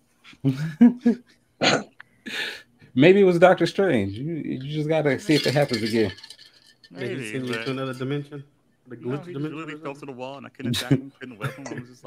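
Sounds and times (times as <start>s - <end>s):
men laughing: 0.4s - 1.4s, 10.6s - 12.0s.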